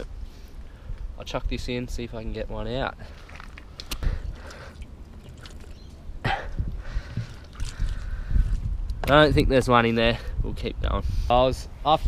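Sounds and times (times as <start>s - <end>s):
scraping and squelching in mud: 2.9s - 6.0s, 7.0s - 8.6s.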